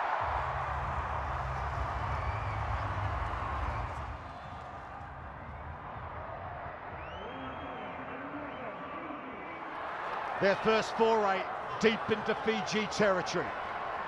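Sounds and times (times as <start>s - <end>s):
stadium crowd voices: 0.0s - 14.0s.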